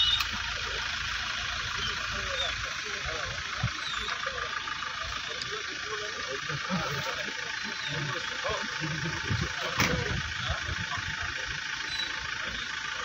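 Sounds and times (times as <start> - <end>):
car engine idling: 0.0 - 13.0
men talking: 0.5 - 13.0.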